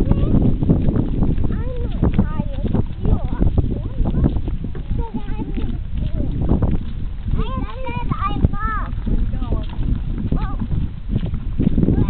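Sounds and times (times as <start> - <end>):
child voices: 0.0 - 0.5, 1.4 - 6.6, 7.3 - 9.2, 10.3 - 10.7
wagon rattling over asphalt: 0.0 - 12.0.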